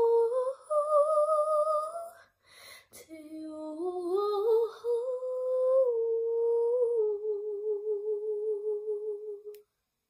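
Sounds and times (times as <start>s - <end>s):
woman singing wordless notes: 0.0s - 2.2s, 3.0s - 9.6s.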